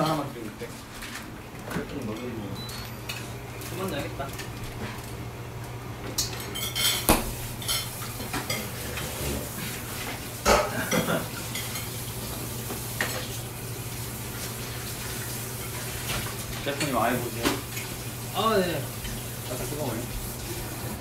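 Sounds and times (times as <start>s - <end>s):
utensils clinking against pots: 1.7s - 4.8s, 6.2s - 12.0s.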